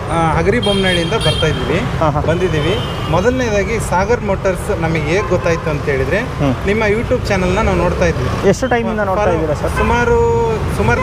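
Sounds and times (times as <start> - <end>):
low rumble of road traffic: 0.0 - 11.0
man speaking: 0.0 - 11.0.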